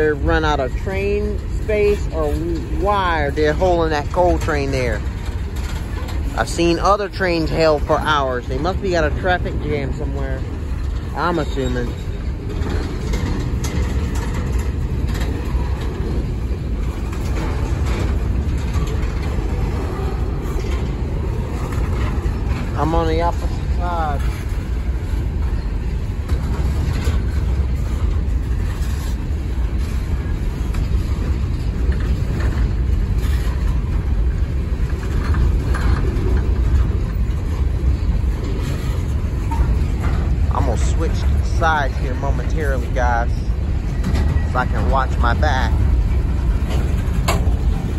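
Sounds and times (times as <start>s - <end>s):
rail cars clacking: 0.0s - 47.9s
steel wheels rumbling on rails: 0.0s - 47.9s.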